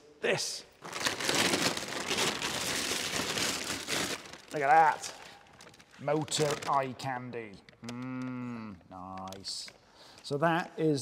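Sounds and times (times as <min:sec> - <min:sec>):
foil and plastic wrap crinkling: 0:00.8 - 0:10.4.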